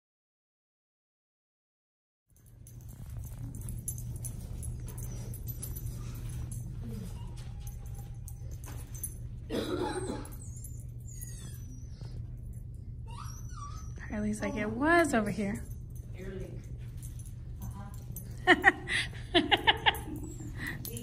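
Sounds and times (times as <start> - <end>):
steady low hum: 2.4 - 21.0
small dog whining: 6.8 - 8.8, 9.5 - 14.6.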